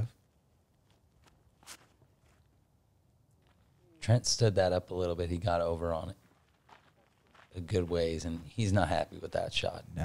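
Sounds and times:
footsteps on concrete: 0.7s - 2.6s, 6.2s - 8.6s.

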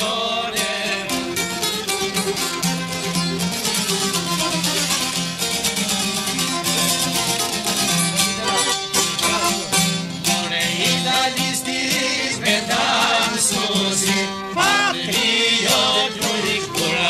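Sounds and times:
fast plucked lute music: 0.4s - 17.0s.

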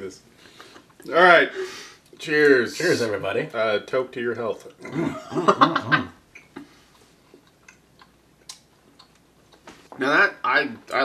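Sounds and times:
wet mouth clicks of chewing: 6.4s - 9.7s.

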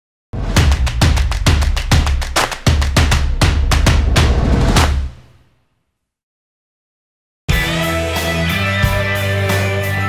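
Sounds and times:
heavy kick drum: 0.4s - 5.2s
music with driving drum beat: 0.4s - 5.2s, 7.5s - 10.0s.

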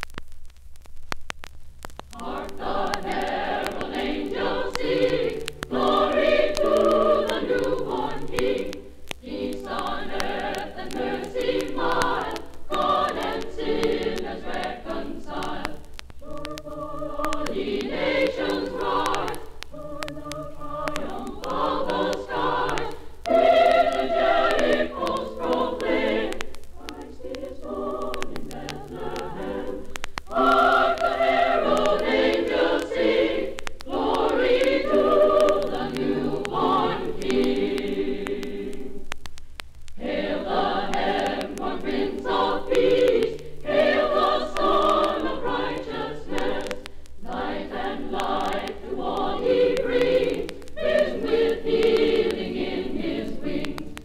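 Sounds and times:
record hiss: 0.0s - 54.0s
vinyl surface clicks: 0.0s - 54.0s
female choir singing: 2.2s - 39.0s, 40.0s - 54.0s.

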